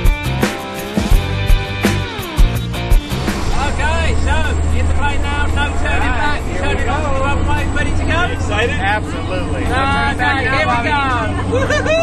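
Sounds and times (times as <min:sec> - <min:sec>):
rock music with drum hits: 0:00.0 - 0:03.8
voices: 0:03.3 - 0:12.0.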